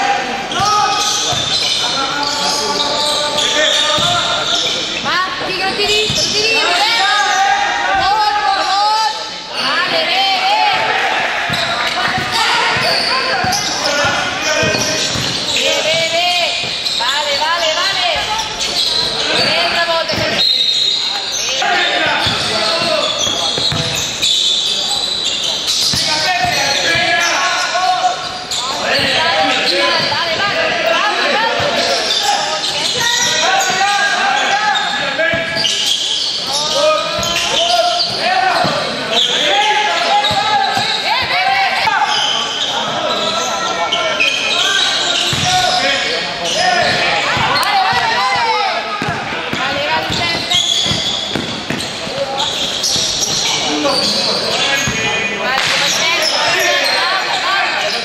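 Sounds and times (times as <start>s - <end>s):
voices echoing in hall: 0.0s - 58.0s
basketball bouncing on court: 0.5s - 1.8s, 3.8s - 4.5s, 5.6s - 6.5s, 11.5s - 18.6s, 19.3s - 20.4s, 22.0s - 24.2s, 25.8s - 27.3s, 37.0s - 38.9s, 40.2s - 41.9s, 45.2s - 45.8s, 49.0s - 53.5s.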